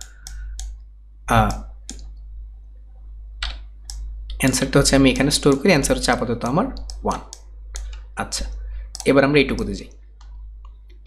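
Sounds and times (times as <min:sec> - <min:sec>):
computer mouse click: 0:00.0 - 0:00.8, 0:01.4 - 0:02.2, 0:06.8 - 0:08.1, 0:08.9 - 0:11.0
low electrical hum: 0:00.0 - 0:11.0.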